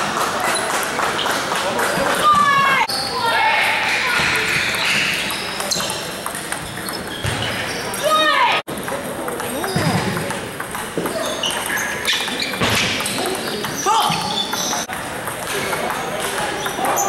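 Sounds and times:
hubbub of voices: 0:00.0 - 0:17.0
shoes squeaking on wooden floor: 0:04.0 - 0:08.5, 0:09.5 - 0:14.9
table tennis ball clicking: 0:04.7 - 0:07.2, 0:08.8 - 0:17.0.

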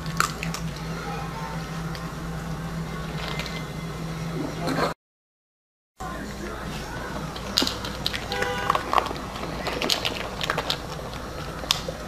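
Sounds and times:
dog eating from bowl: 0:00.0 - 0:02.1, 0:06.4 - 0:12.0
low hum: 0:00.0 - 0:05.0.

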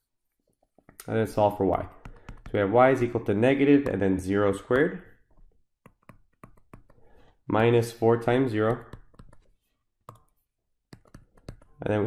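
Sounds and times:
stylus tapping tablet screen: 0:00.6 - 0:11.8.

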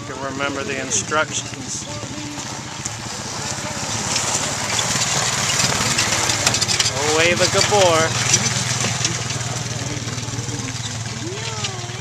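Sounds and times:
quad bike engine running: 0:00.0 - 0:12.0.

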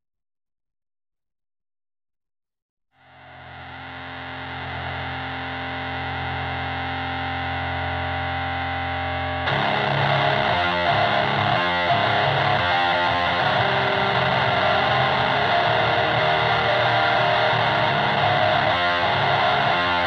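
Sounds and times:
distorted electric guitar chord: 0:03.0 - 0:20.0
rock band playing: 0:09.5 - 0:20.0.

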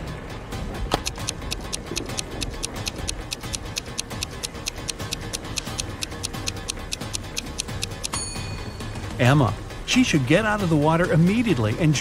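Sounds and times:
background music: 0:00.0 - 0:12.0
stopwatch ticking: 0:00.9 - 0:08.2.

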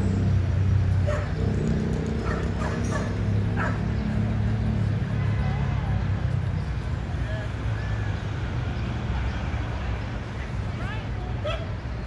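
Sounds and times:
dog yipping: 0:02.2 - 0:03.8.

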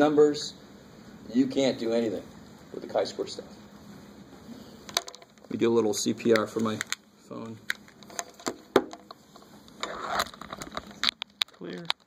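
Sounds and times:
device handling noise: 0:04.8 - 0:05.6, 0:06.2 - 0:12.0
small clicks and knocks: 0:04.9 - 0:05.5, 0:09.8 - 0:12.0.

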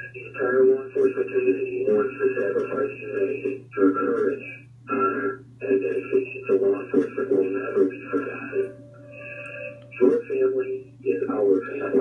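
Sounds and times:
dispatcher voice over radio: 0:00.0 - 0:12.0
steady low hum: 0:00.0 - 0:12.0
held radio tone: 0:04.0 - 0:12.0.

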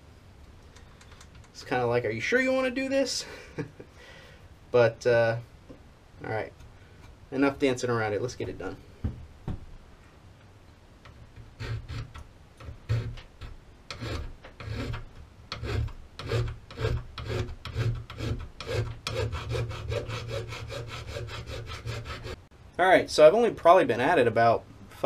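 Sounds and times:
hand file rasping on aluminum: 0:11.6 - 0:22.4.

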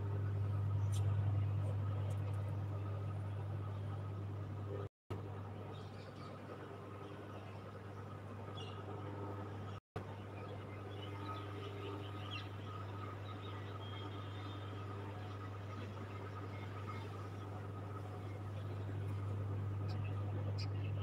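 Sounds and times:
steady low hum: 0:00.0 - 0:21.0
faint bird chirps: 0:10.2 - 0:21.0.

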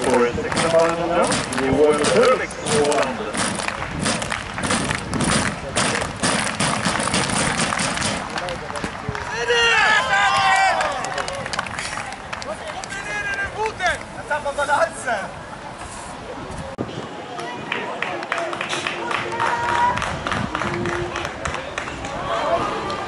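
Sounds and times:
rhythmic clapping: 0:00.0 - 0:09.3, 0:17.7 - 0:22.2
voices calling out and cheering: 0:07.0 - 0:23.0.

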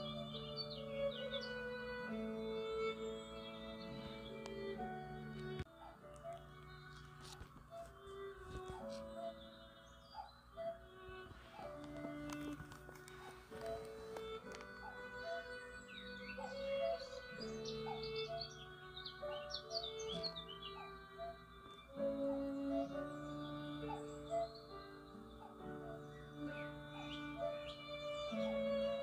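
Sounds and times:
birds chirping: 0:00.0 - 0:29.0
soft instrumental music: 0:00.0 - 0:29.0.

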